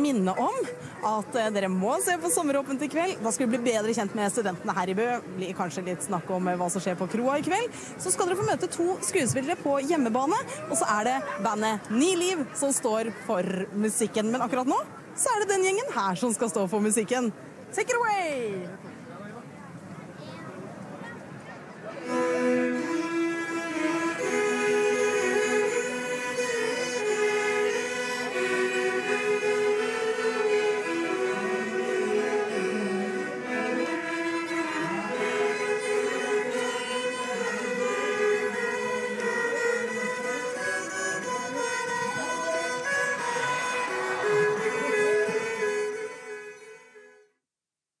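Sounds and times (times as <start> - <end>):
fiddle ensemble playing folk tune: 0.0 - 15.6, 21.9 - 47.0.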